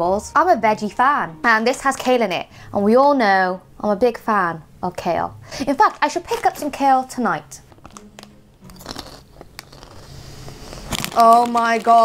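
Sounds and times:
chewing crunchy snacks: 7.8s - 12.0s.

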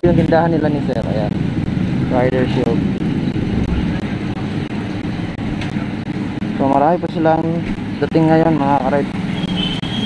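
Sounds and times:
street noise: 0.0s - 10.0s
vehicle engine running: 0.0s - 10.0s.

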